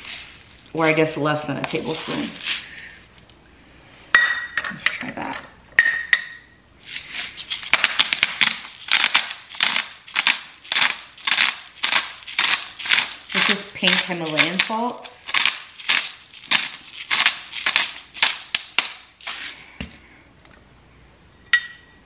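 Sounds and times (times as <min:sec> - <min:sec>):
salt grinder crunching: 0:00.0 - 0:01.0, 0:06.8 - 0:19.4
ringing metal clinks: 0:21.4 - 0:22.0.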